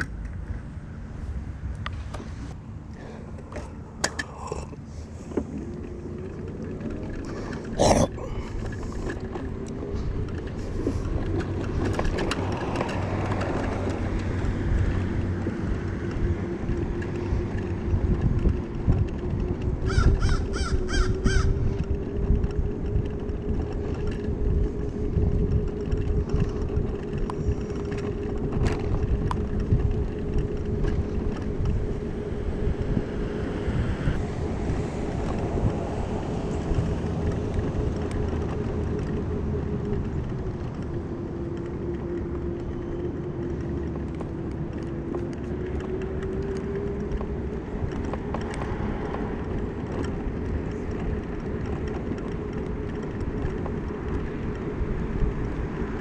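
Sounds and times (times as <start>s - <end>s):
road rumble: 0.0s - 56.0s
wind: 0.0s - 56.0s
electric motor whine: 8.4s - 56.0s
crow cawing: 19.9s - 21.5s.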